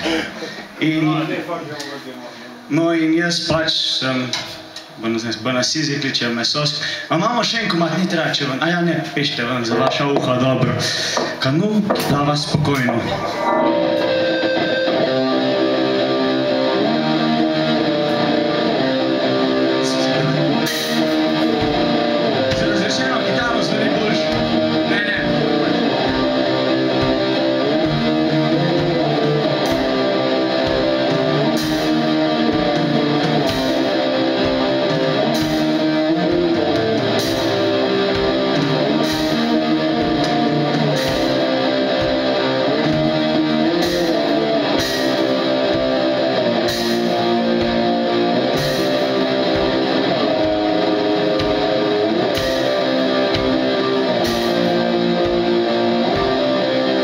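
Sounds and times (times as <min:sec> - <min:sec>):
drum and cymbal hits: 0:09.6 - 0:57.0
electric guitar ringing chords: 0:12.8 - 0:57.0.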